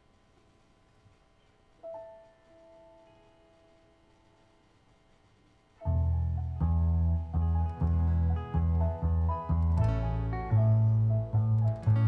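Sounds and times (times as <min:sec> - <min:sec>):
piano chord ringing: 0:05.8 - 0:12.0.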